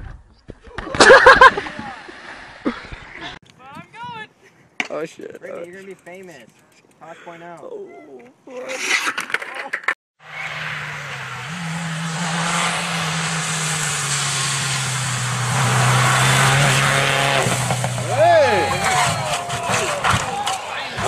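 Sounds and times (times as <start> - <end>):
rally car engine running hard: 10.3 - 19.5
car crashing and rolling: 15.6 - 21.0.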